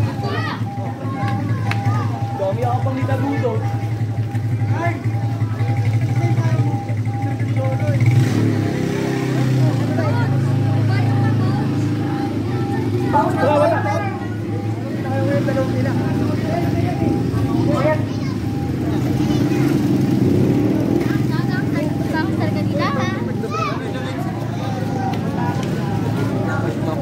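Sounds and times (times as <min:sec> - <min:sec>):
crowd chatter: 0:00.0 - 0:27.0
vehicle engine running: 0:00.0 - 0:27.0.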